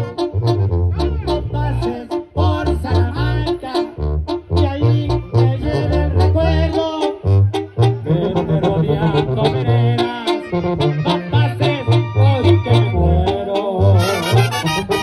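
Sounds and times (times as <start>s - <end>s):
live brass band music: 0.0s - 15.0s.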